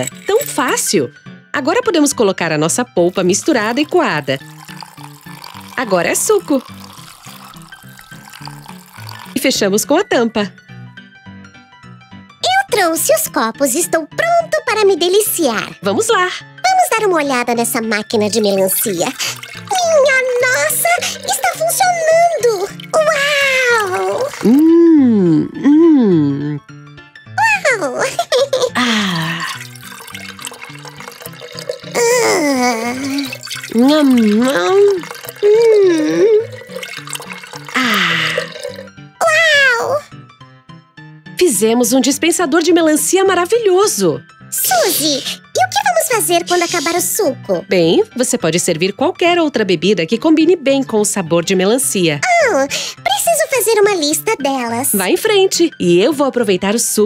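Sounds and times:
juice pouring and splashing: 0:00.0 - 0:00.9, 0:03.0 - 0:10.0, 0:17.4 - 0:24.7, 0:28.1 - 0:40.0
background music with simple melody: 0:00.0 - 0:57.0
person saying ooh: 0:32.0 - 0:33.3.

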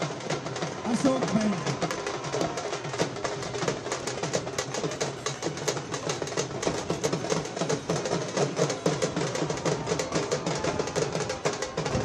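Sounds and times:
frame drums and dhol beat: 0:00.0 - 0:12.0.

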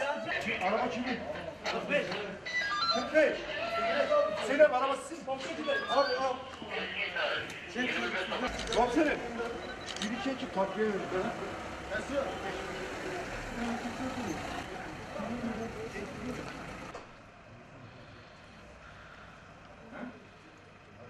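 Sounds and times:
street background: 0:00.0 - 0:21.0
people talking: 0:03.0 - 0:16.9
vehicle engine running: 0:08.5 - 0:17.2.

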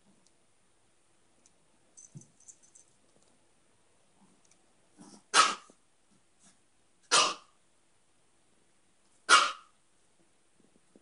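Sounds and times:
small dog barking: 0:05.3 - 0:05.7, 0:07.1 - 0:07.5, 0:09.3 - 0:09.7.

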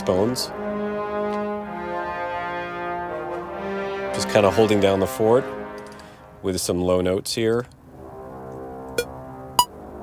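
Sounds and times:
brass chords: 0:00.0 - 0:07.2, 0:07.8 - 0:10.0
bass trombones sustained low notes: 0:00.0 - 0:10.0.

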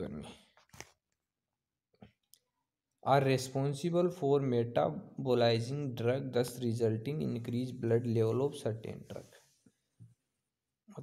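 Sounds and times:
man speaking: 0:00.0 - 0:00.4, 0:03.0 - 0:09.4.

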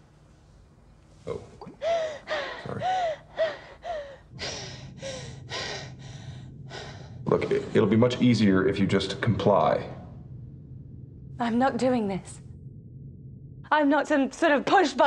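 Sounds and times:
woman gasping and sobbing: 0:01.8 - 0:07.2.

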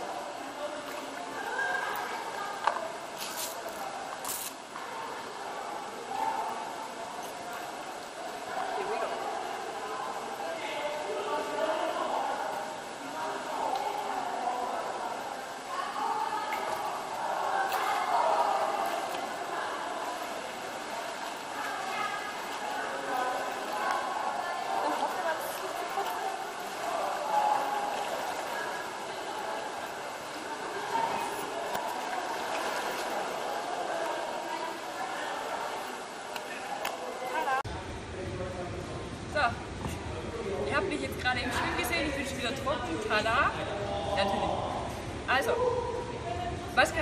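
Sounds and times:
faint indistinct voices: 0:00.0 - 0:47.0
indoor swimming pool ambience: 0:00.0 - 0:47.0
brief hissing rustles: 0:03.2 - 0:04.6.

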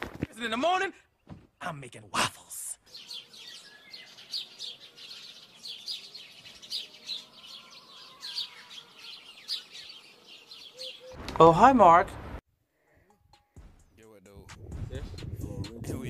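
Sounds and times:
small birds chirping: 0:00.3 - 0:11.2.

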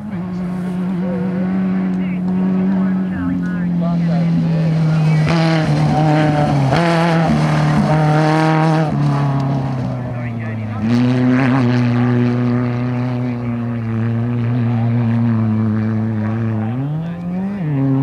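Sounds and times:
race buggy engine running hard: 0:00.0 - 0:18.0.

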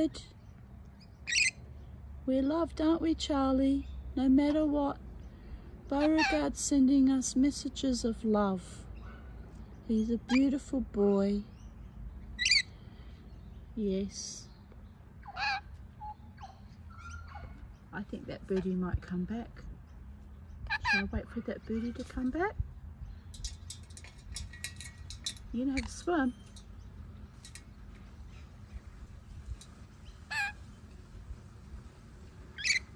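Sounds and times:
soft bird calls: 0:00.0 - 0:02.9, 0:03.6 - 0:32.9.

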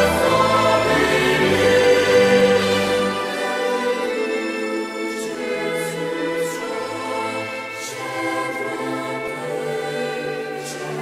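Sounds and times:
choir singing a slow hymn: 0:00.0 - 0:11.0.

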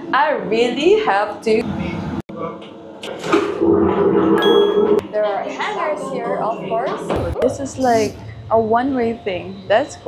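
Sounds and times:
toilet flushing rushing hum: 0:03.2 - 0:07.3
high ringing tone: 0:03.7 - 0:05.1.

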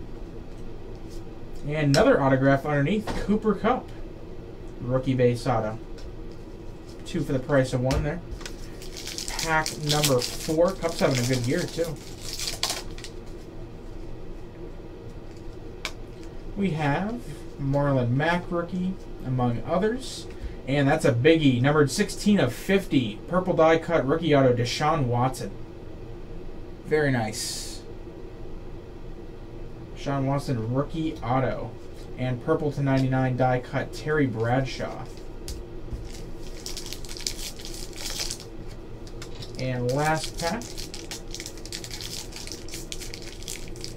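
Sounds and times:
cards being handled: 0:08.4 - 0:13.4, 0:35.0 - 0:43.9
foil wrapper crinkling: 0:08.4 - 0:13.4, 0:36.0 - 0:43.9.

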